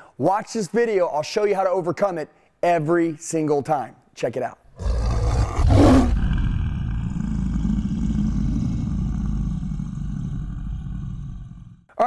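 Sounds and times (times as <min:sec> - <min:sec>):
low lion roar: 0:04.8 - 0:11.9.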